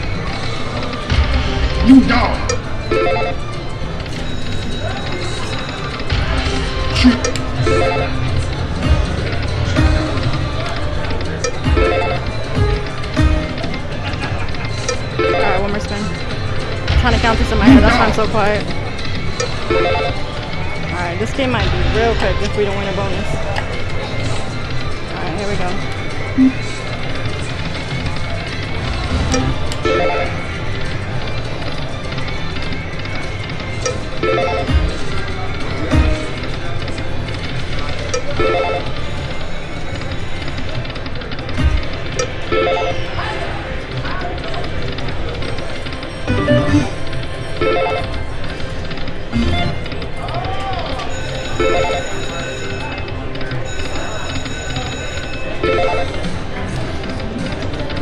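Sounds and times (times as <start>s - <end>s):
slot machine reel tones and jingles: 0.0s - 32.1s, 32.8s - 43.2s, 44.8s - 50.3s, 50.9s - 57.9s
casino background noise: 0.0s - 58.0s
people chattering: 0.0s - 58.0s.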